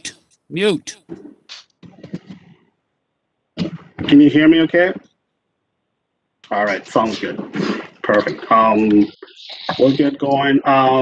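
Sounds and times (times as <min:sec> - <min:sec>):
choppy voice over video call: 0:00.0 - 0:02.6, 0:03.6 - 0:05.0, 0:06.4 - 0:11.0.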